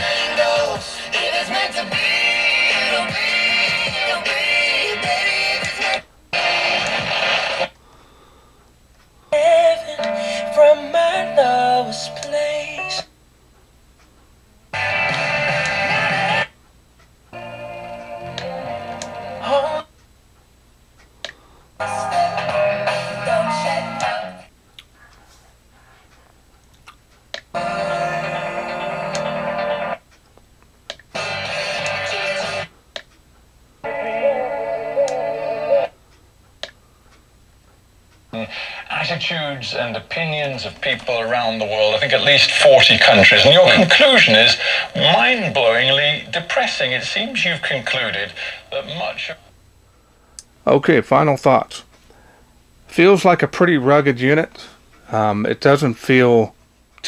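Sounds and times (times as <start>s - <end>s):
radio music snatches: 0.0s - 7.8s, 14.8s - 16.6s, 38.3s - 49.5s.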